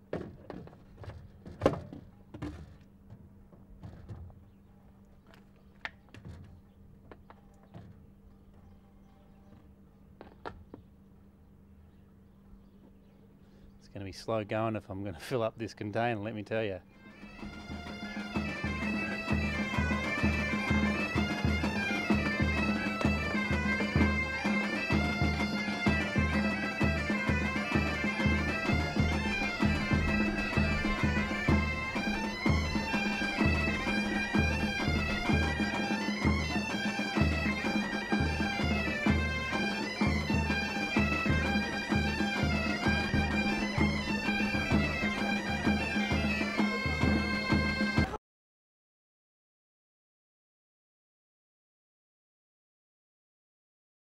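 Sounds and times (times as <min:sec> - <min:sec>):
bagpipe melody with drone: 0:16.8 - 0:48.2
low drum beat: 0:17.4 - 0:46.2.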